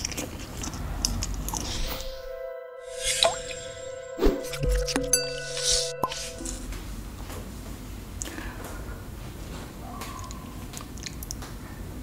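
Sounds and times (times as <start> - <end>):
chewing soft food: 0.0 - 1.7, 9.9 - 11.5
logo jingle: 1.4 - 6.7.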